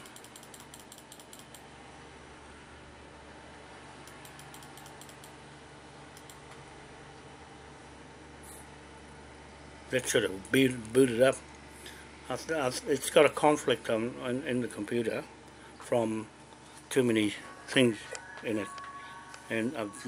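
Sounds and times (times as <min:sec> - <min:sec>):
faint rapid clicking: 0:00.0 - 0:01.6
desktop computer hum: 0:00.0 - 0:20.0.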